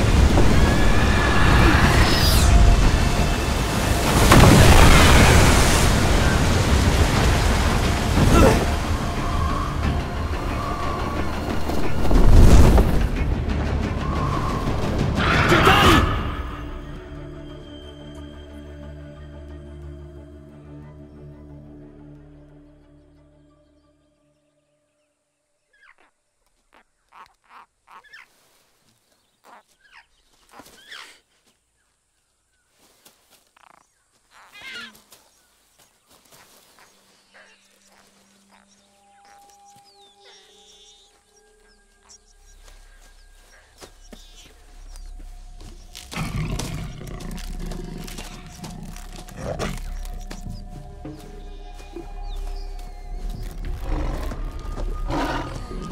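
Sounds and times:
film soundtrack music: 0.0s - 25.6s, 36.7s - 55.9s
bird chicks squeaking: 33.6s - 46.1s
wild animal roaring: 46.1s - 50.2s, 53.7s - 55.9s.

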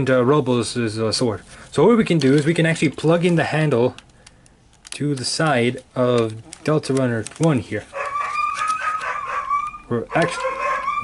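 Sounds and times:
high wavering cry: 7.9s - 11.0s.

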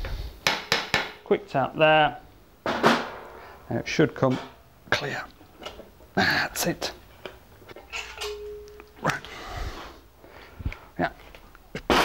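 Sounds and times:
metal knocks and handling noises: 4.2s - 4.6s, 7.2s - 9.2s.

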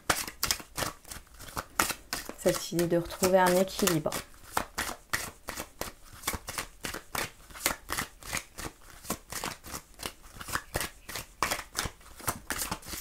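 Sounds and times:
cards being shuffled: 0.0s - 13.0s.

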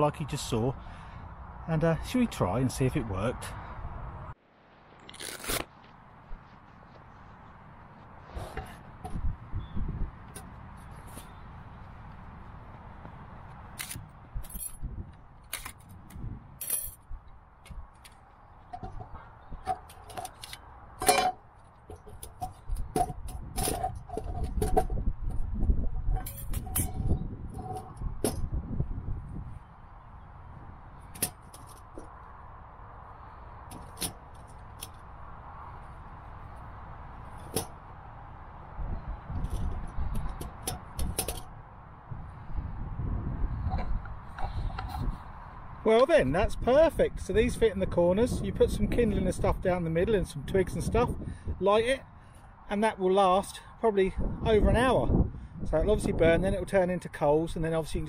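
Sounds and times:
metal panels clicking and clinking: 18.7s - 25.0s, 26.1s - 28.5s, 39.4s - 41.6s.

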